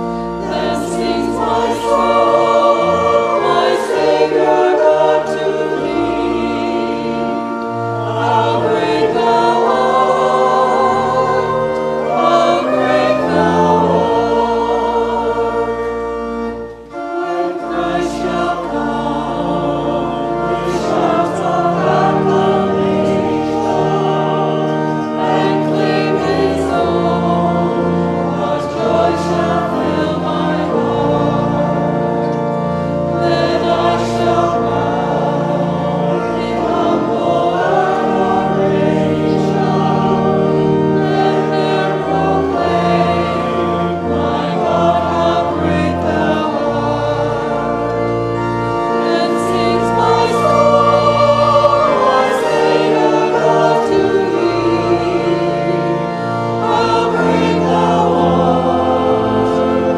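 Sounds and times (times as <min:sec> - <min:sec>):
congregation singing a hymn: 0:00.0 - 0:59.9
organ accompaniment: 0:00.0 - 0:59.9.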